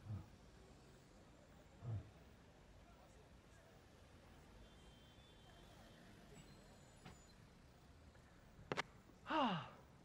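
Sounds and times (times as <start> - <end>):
man's long sigh: 9.3 - 9.8.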